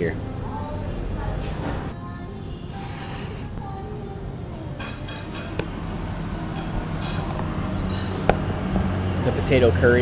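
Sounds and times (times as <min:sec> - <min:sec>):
vehicle engine hum: 0:02.7 - 0:10.0.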